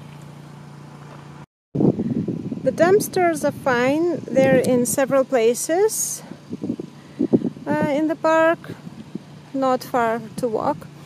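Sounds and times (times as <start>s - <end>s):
steady low hum: 0.0s - 11.0s
gusty wind buffeting microphone: 1.8s - 11.0s.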